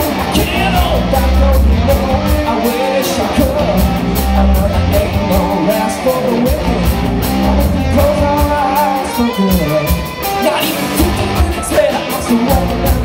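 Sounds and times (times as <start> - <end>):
bass guitar: 0.0 - 13.0
drum kit with cymbal beat: 0.0 - 13.0
electric guitar: 0.0 - 13.0
person singing: 0.1 - 13.0.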